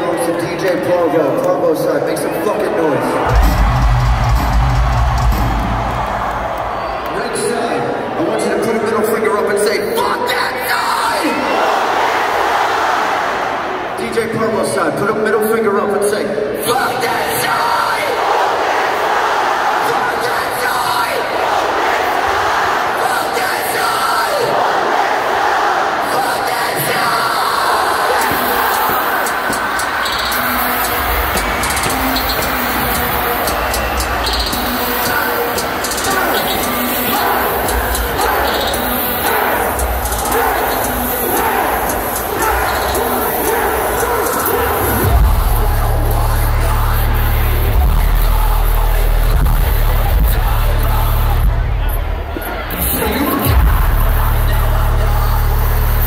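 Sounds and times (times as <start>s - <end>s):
arena crowd cheering: 0.0s - 56.0s
deep bass from loudspeakers: 44.8s - 56.0s.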